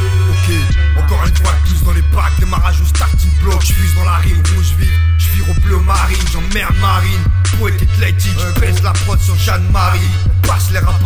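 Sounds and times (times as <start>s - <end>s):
hip hop beat with heavy bass: 0.0s - 11.0s
person rapping: 0.0s - 11.0s.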